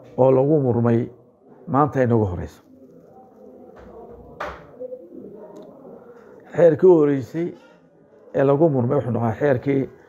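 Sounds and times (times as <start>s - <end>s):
man speaking: 0.2s - 2.6s, 6.5s - 7.6s, 8.4s - 10.0s.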